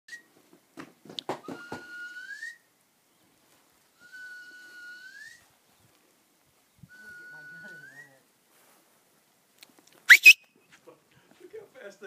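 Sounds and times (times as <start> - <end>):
person whistling long notes: 1.6 - 2.6, 4.0 - 5.5, 10.1 - 10.5.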